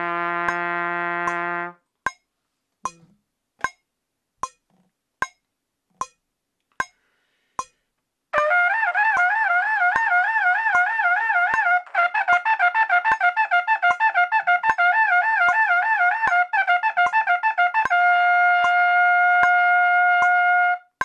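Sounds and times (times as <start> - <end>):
trumpet playing rapid notes: 0.0 - 1.8, 8.4 - 21.0
metronome clicks: 2.8 - 7.0, 16.3 - 20.5.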